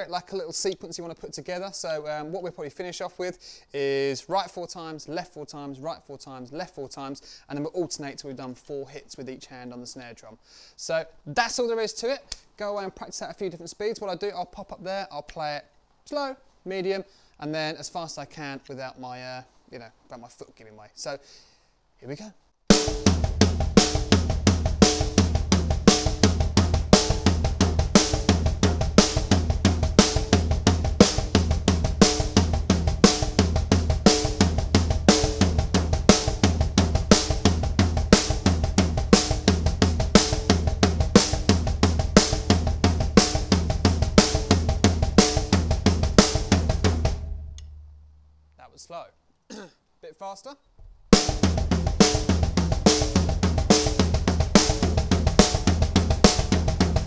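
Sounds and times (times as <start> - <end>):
kick drum thumps: 22.7 - 47.6, 50.8 - 57.0
stick on snare drum: 22.7 - 47.9, 51.1 - 57.0
person clearing throat: 49.5 - 49.8.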